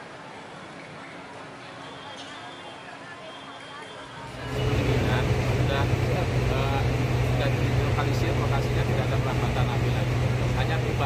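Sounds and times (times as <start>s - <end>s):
people talking: 1.0s - 11.0s
vehicle engine running: 4.3s - 11.0s.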